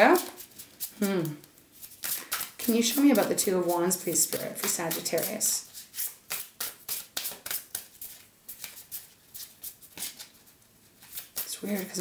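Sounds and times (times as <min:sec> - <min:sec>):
cards being shuffled by hand: 0:00.0 - 0:03.4, 0:04.1 - 0:12.0.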